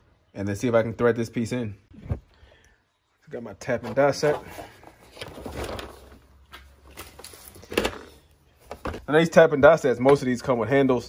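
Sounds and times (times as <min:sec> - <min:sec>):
plastic case rustling: 0:03.8 - 0:09.1.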